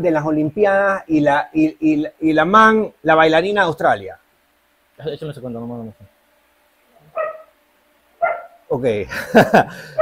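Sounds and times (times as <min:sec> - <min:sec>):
man laughing heartily: 0:09.1 - 0:10.0.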